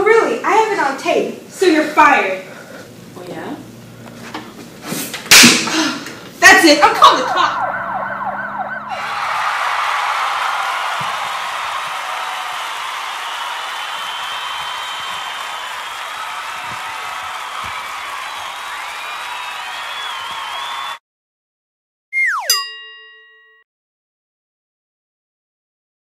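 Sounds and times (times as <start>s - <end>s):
falling swoosh: 7.1s - 10.0s
crowd cheering and applauding: 7.3s - 21.0s
ringing chime: 22.4s - 23.6s.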